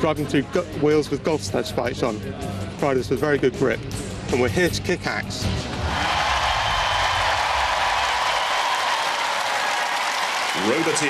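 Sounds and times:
studio audience applauding: 5.8 - 11.0.

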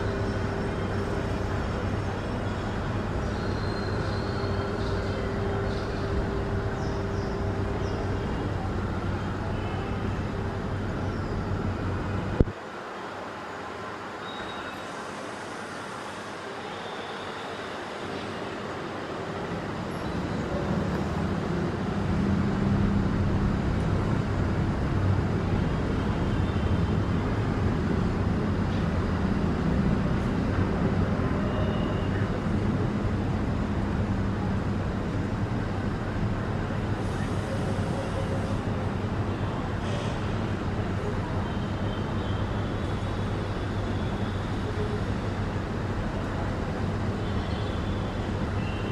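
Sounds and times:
road traffic rumble: 0.0 - 48.9.

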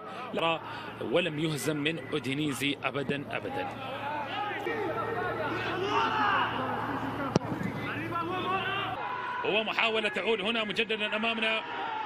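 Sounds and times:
voices calling across field: 0.0 - 9.5.

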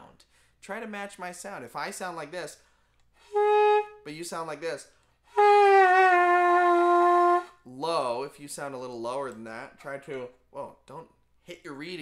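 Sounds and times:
saxophone sustained note: 3.3 - 4.0, 5.4 - 7.5.

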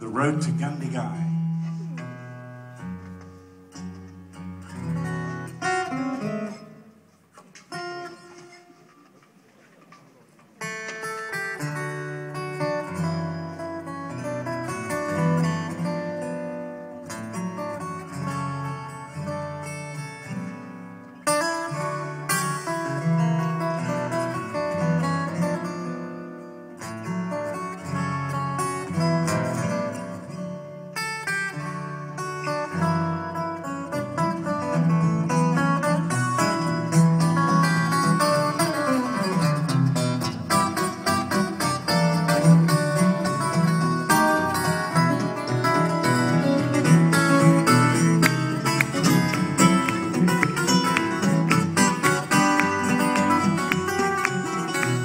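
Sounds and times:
acoustic guitars fingerstyle duet: 0.0 - 55.0.

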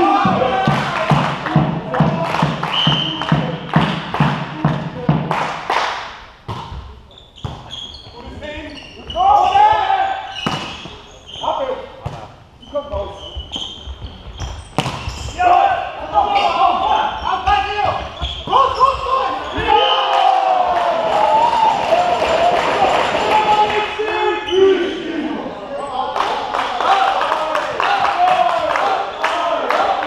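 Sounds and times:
players shouting: 0.0 - 3.6, 9.1 - 10.4, 15.3 - 30.0
ball striking floor: 6.4 - 7.7, 10.4 - 10.9, 12.0 - 12.3, 13.6 - 15.3
hands smacking volleyball: 14.8 - 15.1.

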